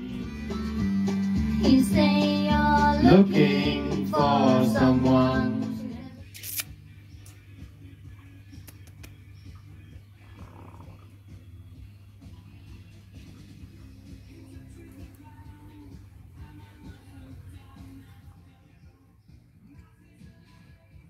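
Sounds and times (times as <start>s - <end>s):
karaoke singing over backing track: 0.8s - 6.3s, 12.2s - 21.0s.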